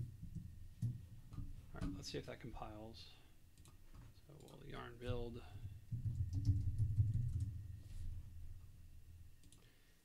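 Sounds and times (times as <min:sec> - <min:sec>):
keyboard typing: 0:06.0 - 0:07.6.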